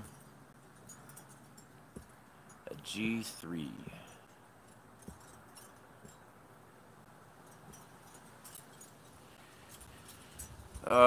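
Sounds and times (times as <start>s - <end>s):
faint background hiss: 0.0s - 11.0s.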